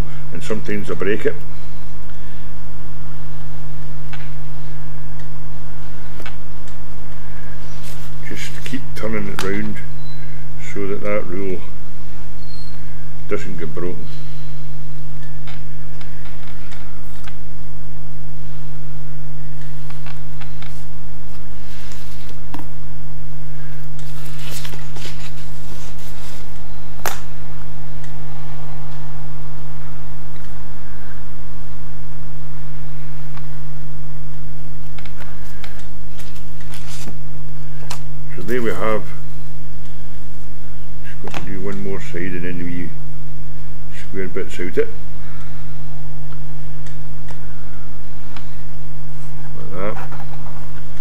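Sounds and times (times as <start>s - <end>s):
low electrical hum: 0.0s - 51.0s.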